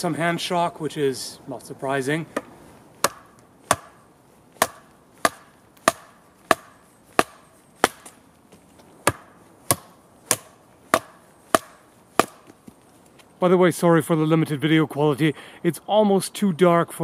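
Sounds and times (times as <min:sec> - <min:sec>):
blade chopping wood: 0:02.3 - 0:08.2, 0:09.0 - 0:12.7.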